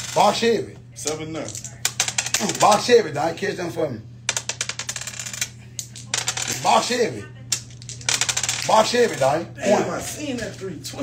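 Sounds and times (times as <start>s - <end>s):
dice clicking and rattling in hand: 4.3s - 6.6s, 7.5s - 9.2s.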